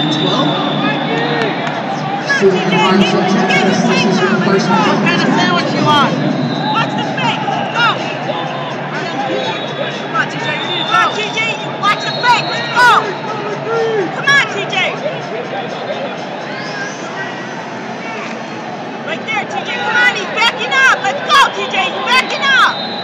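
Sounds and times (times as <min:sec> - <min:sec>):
indoor arena crowd voices: 0:00.0 - 0:23.0.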